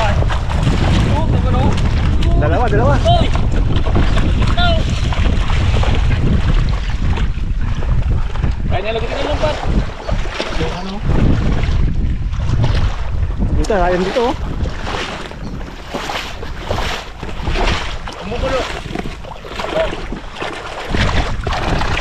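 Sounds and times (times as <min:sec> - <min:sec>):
wind buffeting microphone: 0:00.0 - 0:22.0.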